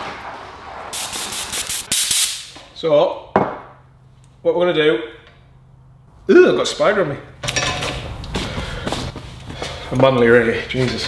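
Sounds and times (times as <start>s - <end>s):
scuffing: 8.3s - 9.9s.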